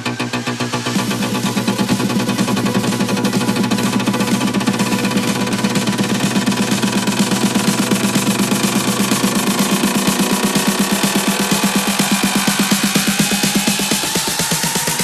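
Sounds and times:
electronic dance music: 0.0s - 15.0s.

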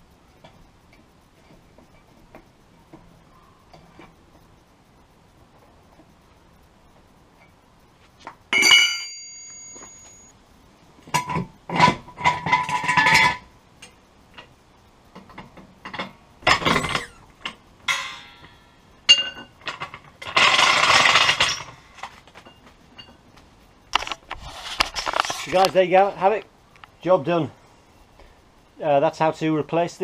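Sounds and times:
wheel brace clanking on ground: 8.2s - 10.3s, 11.0s - 14.5s, 15.1s - 23.3s
car jack clanking and scraping: 11.2s - 13.5s, 15.2s - 23.2s.

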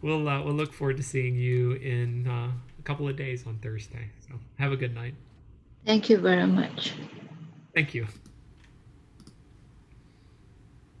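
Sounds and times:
faint clicks: 8.1s - 9.4s.

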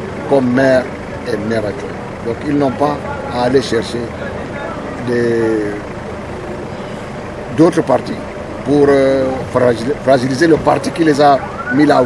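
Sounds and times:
outdoor background hum: 0.0s - 12.0s
man hesitation sound: 7.3s - 12.0s.

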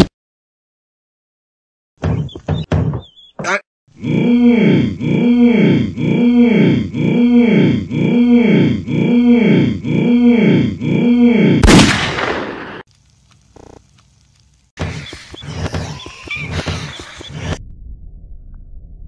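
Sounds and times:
pitch-bent hummed voice sample: 4.0s - 11.6s
gunshot sound effect: 11.6s - 12.8s.

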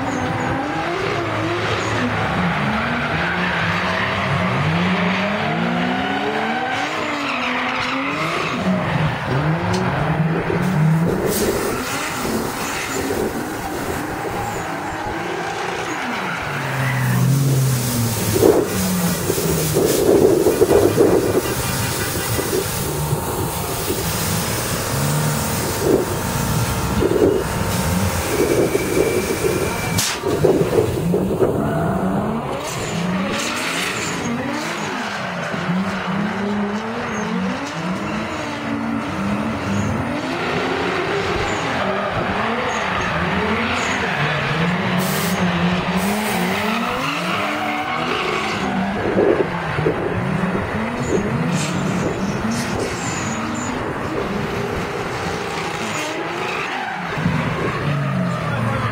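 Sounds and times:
car engines revving: 0.0s - 58.9s
tyre squeal: 10.7s - 30.4s, 31.6s - 35.5s, 37.0s - 38.5s, 41.4s - 49.1s, 50.9s - 54.5s.

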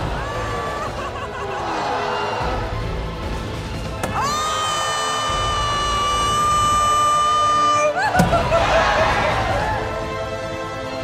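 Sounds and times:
crowd cheering: 0.0s - 3.0s, 3.8s - 10.2s.

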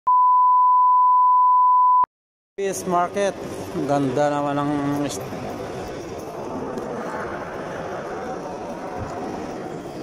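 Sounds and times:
steady test tone beep: 0.1s - 2.1s.

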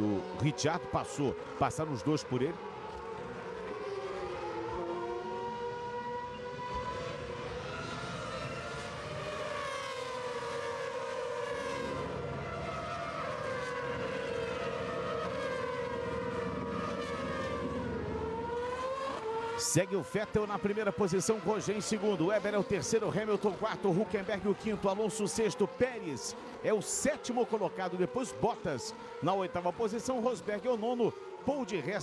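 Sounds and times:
racing car engines at high revs: 0.0s - 32.0s.

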